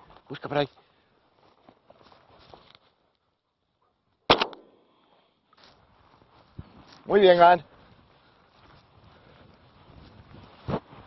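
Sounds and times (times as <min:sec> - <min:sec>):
faint footsteps: 0:00.0 - 0:03.4, 0:04.6 - 0:11.0
shotgun shot: 0:04.3 - 0:04.8.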